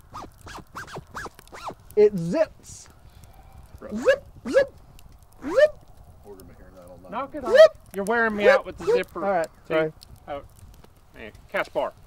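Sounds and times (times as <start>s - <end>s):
clothing zipper pulled up and down: 0.0s - 1.8s, 3.9s - 4.7s, 5.4s - 5.7s, 8.4s - 9.1s.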